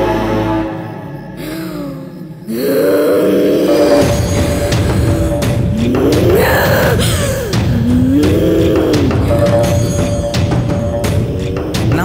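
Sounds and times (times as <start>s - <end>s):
film soundtrack music: 0.0s - 12.0s
deep held groaning: 1.3s - 12.0s.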